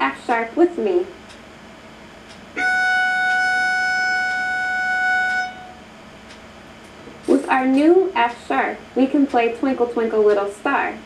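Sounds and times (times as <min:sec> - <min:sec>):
violin bowed note: 0:02.6 - 0:05.8.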